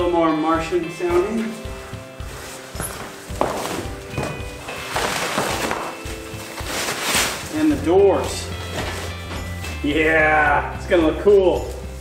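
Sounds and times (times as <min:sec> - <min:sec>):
background music with held notes: 0:00.0 - 0:12.0
plastic wrap crinkling: 0:02.3 - 0:10.1.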